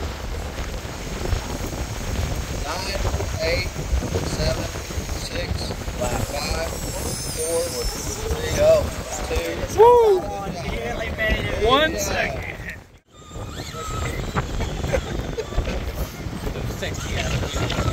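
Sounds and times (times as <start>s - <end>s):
wind buffeting microphone: 0.0s - 17.9s
faint voices talking: 2.6s - 17.9s
person shouting: 9.7s - 10.4s.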